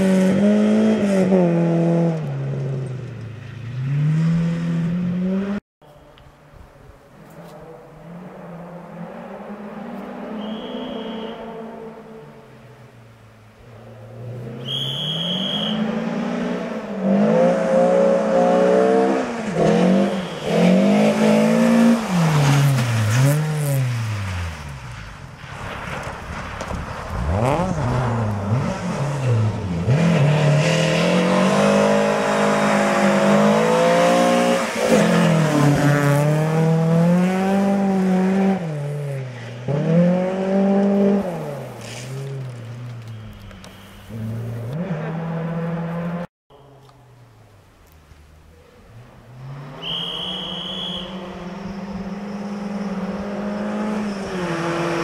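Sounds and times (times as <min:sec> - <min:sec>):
rally car engine revving: 0:00.0 - 0:05.6, 0:13.6 - 0:46.3, 0:48.8 - 0:55.0.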